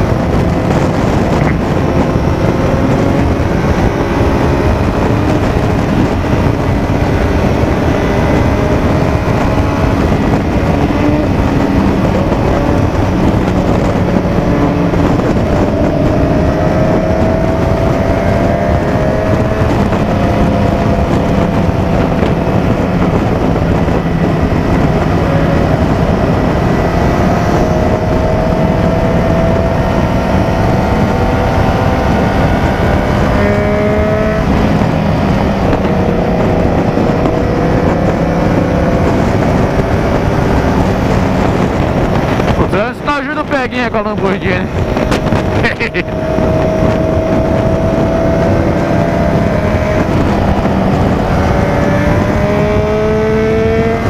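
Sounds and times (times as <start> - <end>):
motorcycle engine running: 0.0 - 54.0
wind on microphone: 0.0 - 54.0.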